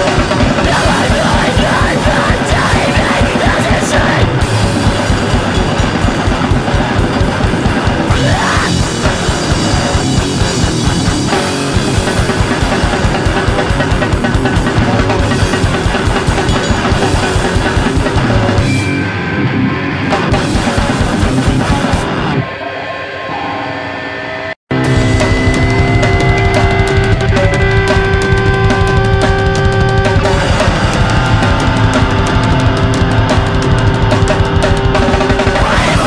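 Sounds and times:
fast dense drumming: 0.0 - 18.9, 20.1 - 22.3, 24.7 - 36.0
heavily distorted guitar: 0.0 - 36.0.

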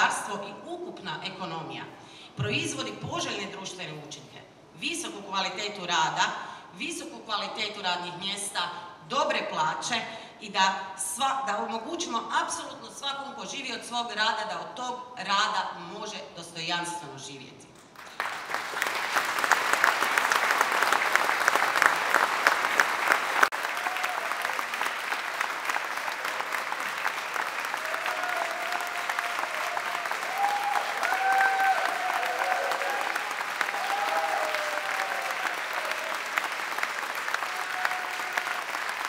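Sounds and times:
crowd applauding: 17.9 - 39.0.

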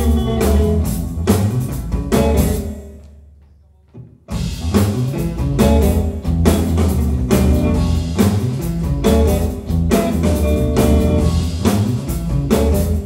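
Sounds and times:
live band playing: 0.0 - 3.0, 4.2 - 13.0.

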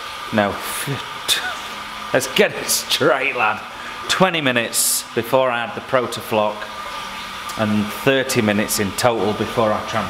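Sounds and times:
machinery hum with thin tone: 0.0 - 10.0
man speaking: 0.3 - 6.7, 7.5 - 10.0.

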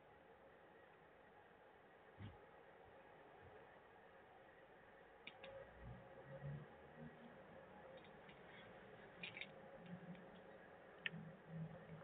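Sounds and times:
soft clicks: 5.2 - 5.6.

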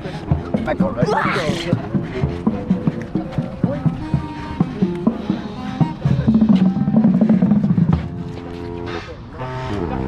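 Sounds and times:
marching band brass: 1.5 - 10.0.

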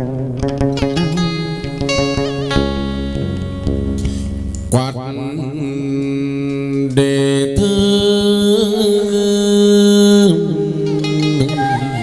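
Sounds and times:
instrumental accompaniment: 0.0 - 8.6, 9.7 - 12.0.

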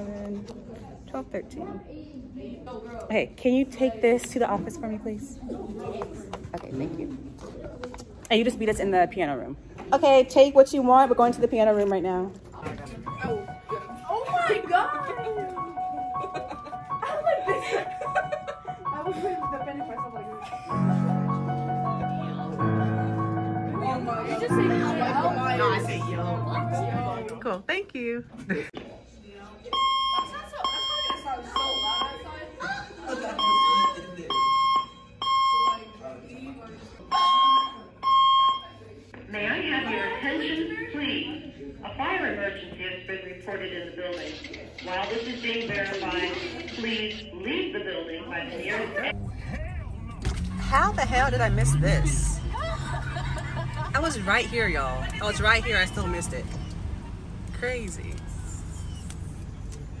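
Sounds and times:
fire alarm horn beeping: 29.7 - 32.2, 33.4 - 36.0, 37.1 - 38.8.

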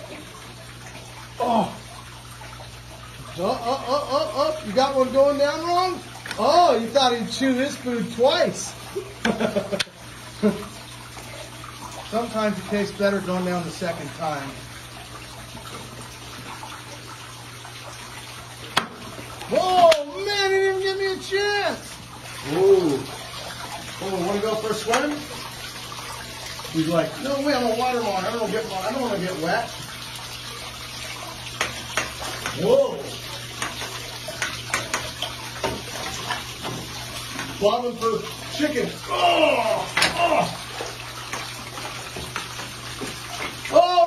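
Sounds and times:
running water: 0.0 - 44.0.

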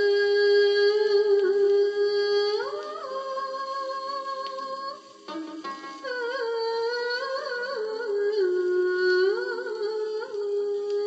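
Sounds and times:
film song from vinyl record: 0.0 - 11.0
hummed vocal melody: 6.2 - 11.0.

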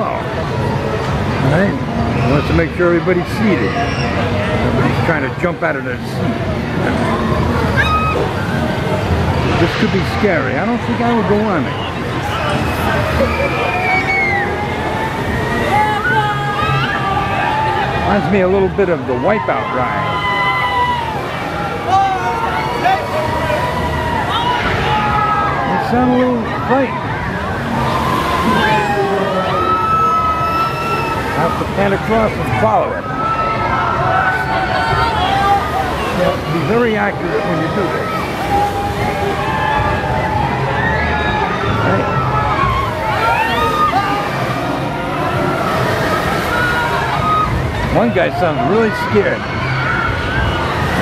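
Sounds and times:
low rumble of amusement ride: 0.0 - 51.0
riders screaming and yelling: 6.6 - 9.7, 10.6 - 51.0.

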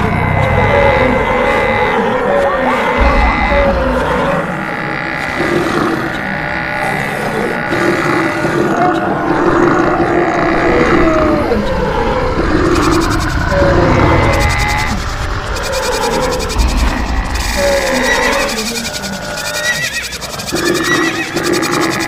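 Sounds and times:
animals lowing: 0.0 - 22.0
running hooves rumbling: 0.0 - 22.0.

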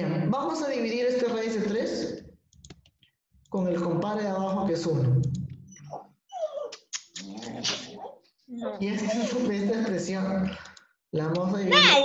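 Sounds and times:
sharp clicks: 2.6 - 3.0
dog whining: 5.7 - 9.5, 11.7 - 12.0.

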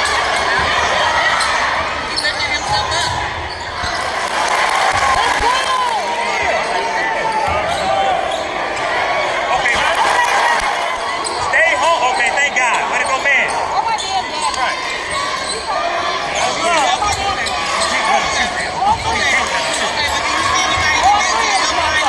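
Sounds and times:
spectators chattering and shouting: 0.0 - 22.0
sneaker squeaks: 0.3 - 4.1, 6.4 - 8.9, 10.7 - 22.0.

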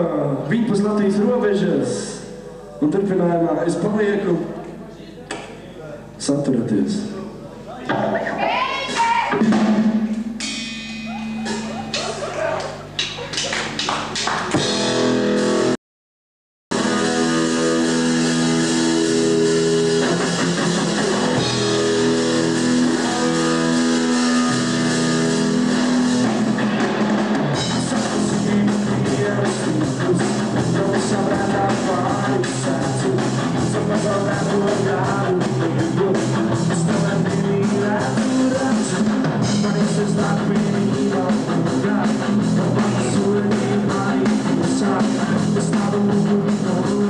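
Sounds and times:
live rock band playing: 8.5 - 15.8, 16.7 - 47.0.

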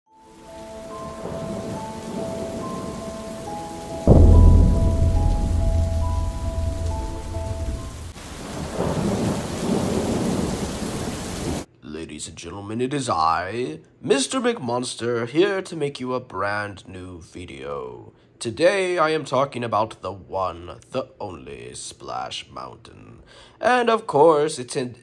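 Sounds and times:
steady rain: 0.1 - 11.7
slow tune of held notes: 0.2 - 8.2
thunderclap with deep rumble: 4.1 - 11.6.

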